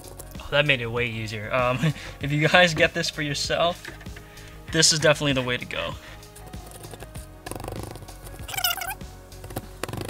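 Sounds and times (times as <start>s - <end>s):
background music: 0.0s - 10.0s
squeaky rasp: 6.6s - 10.0s.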